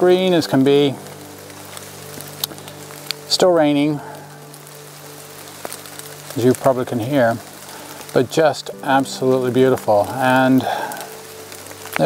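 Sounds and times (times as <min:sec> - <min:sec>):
steady rain patter: 0:00.0 - 0:12.0.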